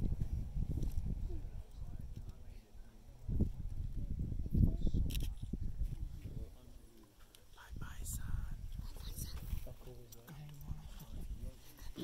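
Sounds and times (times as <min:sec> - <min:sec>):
faint indistinct talk: 0:01.2 - 0:12.0.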